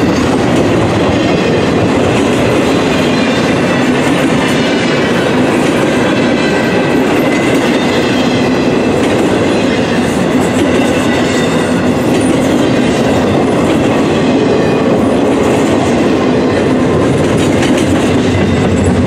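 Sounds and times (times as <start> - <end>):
freight train rumbling past: 0.0 - 19.0.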